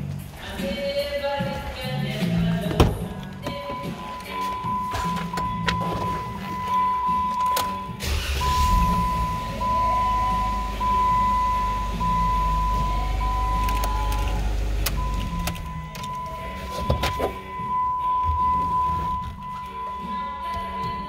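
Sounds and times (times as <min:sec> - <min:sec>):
car engine starting: 0:00.0 - 0:19.8
background music: 0:00.0 - 0:21.0
car engine idling: 0:00.0 - 0:21.0.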